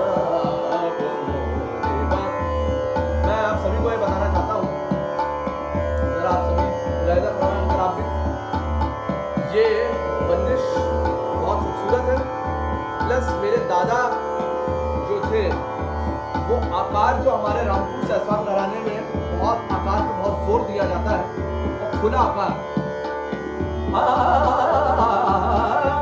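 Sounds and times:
plucked string figures: 0:00.0 - 0:26.0
tabla beat: 0:00.0 - 0:26.0
tanpura drone: 0:00.0 - 0:26.0.

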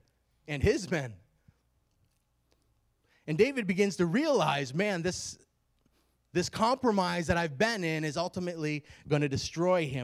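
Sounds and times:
man speaking into a microphone: 0:00.4 - 0:01.3, 0:03.2 - 0:05.5, 0:06.3 - 0:10.0.

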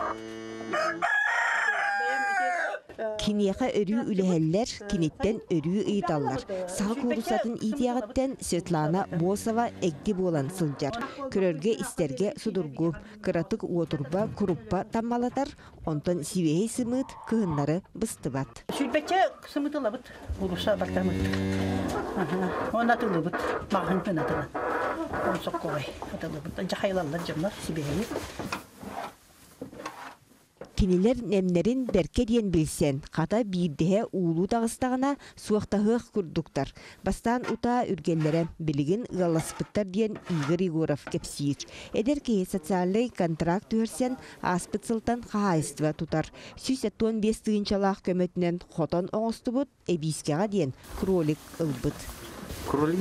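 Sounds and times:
rooster crowing: 0:00.0 - 0:02.8
woman speaking: 0:03.0 - 0:21.3, 0:22.0 - 0:28.2, 0:30.8 - 0:52.1.

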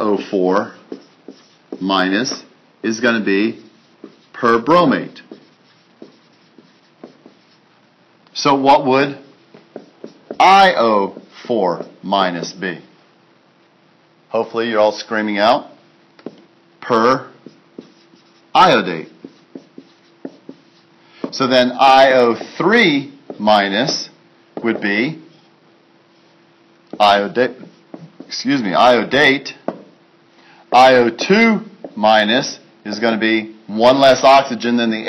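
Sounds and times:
marker writing on a whiteboard: 0:00.0 - 0:02.5, 0:03.2 - 0:07.6, 0:09.2 - 0:12.6, 0:16.2 - 0:28.6, 0:29.6 - 0:30.0, 0:30.8 - 0:32.1.

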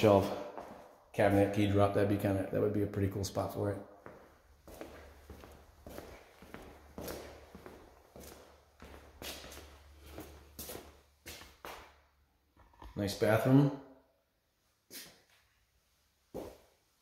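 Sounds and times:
footsteps on tile floor: 0:00.0 - 0:01.6, 0:04.0 - 0:12.0, 0:14.9 - 0:15.4, 0:16.3 - 0:16.8.

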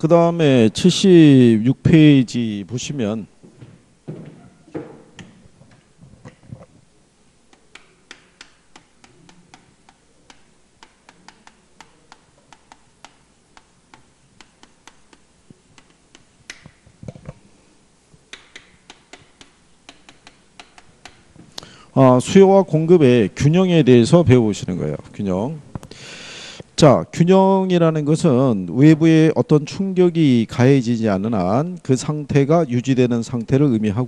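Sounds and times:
chalk tapping on blackboard: 0:07.5 - 0:16.8, 0:18.3 - 0:21.3.

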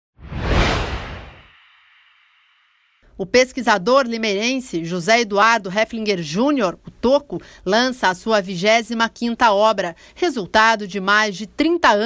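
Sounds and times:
whoosh sound effect: 0:00.2 - 0:02.7.

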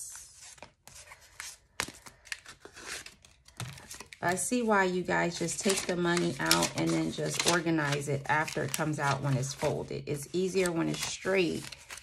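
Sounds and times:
paper banknotes rustling: 0:00.2 - 0:12.0.

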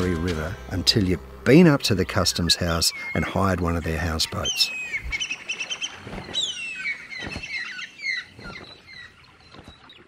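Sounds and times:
birds whistling downward notes: 0:01.7 - 0:10.0.

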